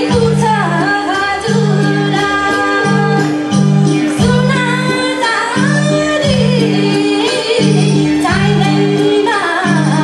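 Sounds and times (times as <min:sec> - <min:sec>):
instrumental accompaniment: 0:00.0 - 0:10.0
woman singing folk melody: 0:00.0 - 0:10.0.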